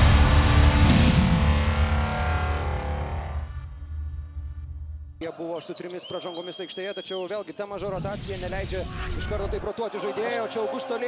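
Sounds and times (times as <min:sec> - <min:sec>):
heavy cinematic hit: 0:00.0 - 0:05.1
deep rumble: 0:00.0 - 0:05.2.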